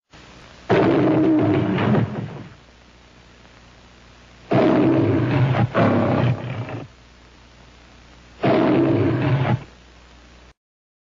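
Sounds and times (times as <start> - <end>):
lion roaring: 0.7 - 2.5, 4.5 - 6.9, 8.4 - 9.6.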